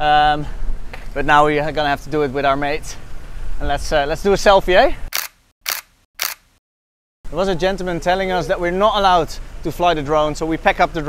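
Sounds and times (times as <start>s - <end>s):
camera shutter clicks: 5.2s - 6.5s.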